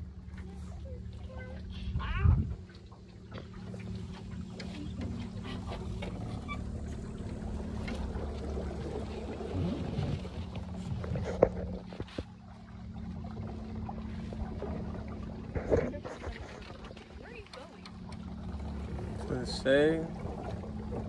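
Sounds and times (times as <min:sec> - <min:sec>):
electric boat motor humming: 0:00.0 - 0:21.0
water washing against hull: 0:00.0 - 0:21.0.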